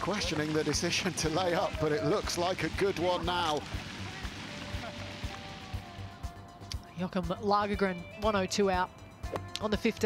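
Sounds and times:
spectators applauding: 0.0s - 6.0s
background music with steady beat: 0.0s - 10.0s.

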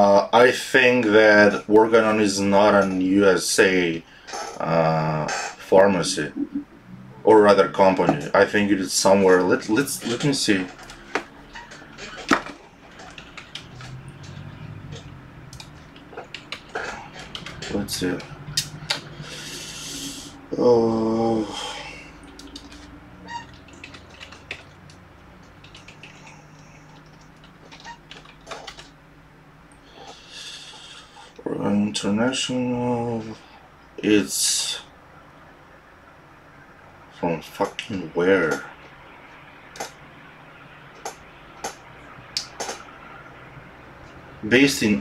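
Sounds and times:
keyboard keys clicking: 15.5s - 18.3s, 22.2s - 28.9s
sharp keyboard or mouse clicks: 25.4s - 26.4s, 27.0s - 28.9s.

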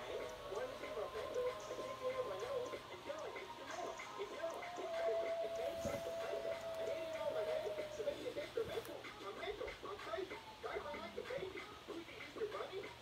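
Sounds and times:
music with high voice-like sounds: 0.0s - 13.0s.

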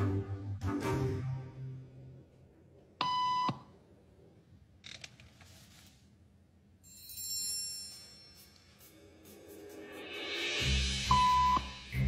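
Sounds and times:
electronic beep: 11.1s - 11.8s.

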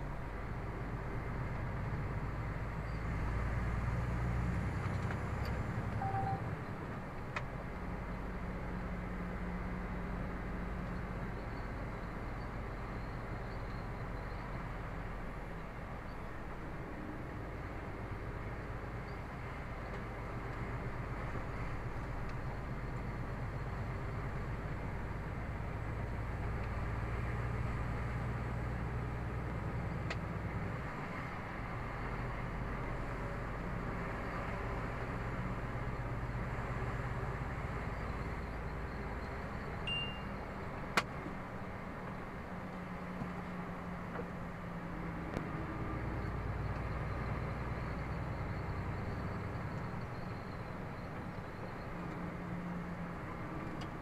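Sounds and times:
car engine and tyre noise: 0.0s - 54.0s
short high beep: 6.0s - 6.5s, 39.9s - 40.4s.

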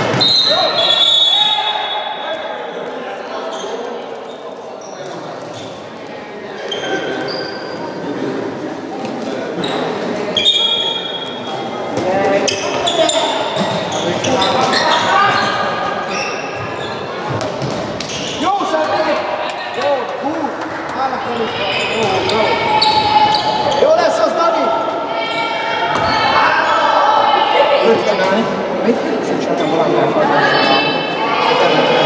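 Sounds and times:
players shouting: 18.2s - 28.4s.

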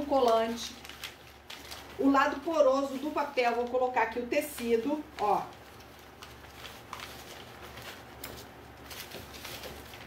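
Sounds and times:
paper and fabric rustling: 0.0s - 10.0s.

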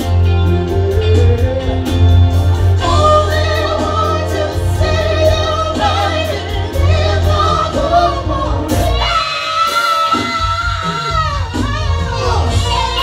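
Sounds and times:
electric bass: 0.0s - 9.6s, 10.2s - 13.0s
keyboards: 0.0s - 13.0s
men singing together: 2.8s - 13.0s.

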